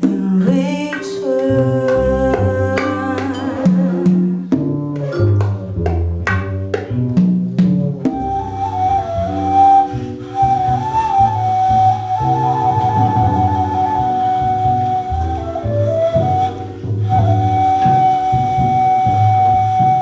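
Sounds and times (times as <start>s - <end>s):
percussion: 0.0s - 20.0s
bass line: 1.5s - 20.0s
high wind instrument melody: 8.1s - 20.0s.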